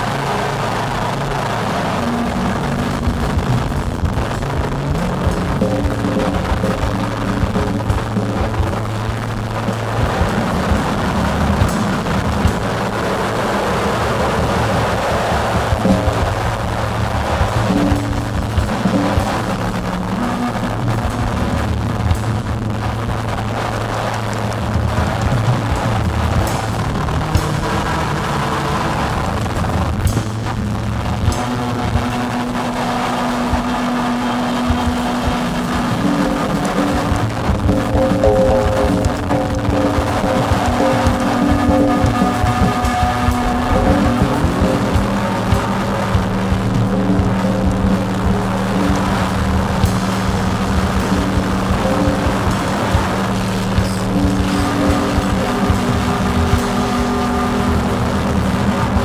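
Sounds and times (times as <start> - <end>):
acoustic drum kit: 0.0 - 59.0
electronic noise wall: 0.0 - 59.0.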